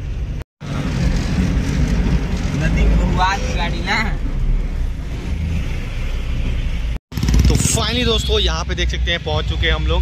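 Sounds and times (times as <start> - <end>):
vehicle engine and road noise: 0.0 - 10.0.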